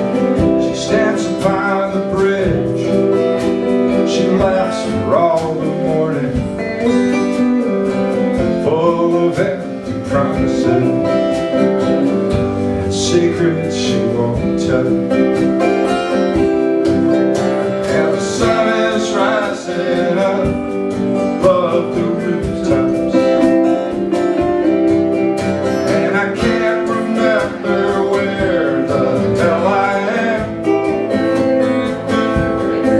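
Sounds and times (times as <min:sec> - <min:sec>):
drums: 0:00.0 - 0:32.9
electric lead guitar: 0:00.0 - 0:32.9
strummed acoustic guitar: 0:00.0 - 0:32.9.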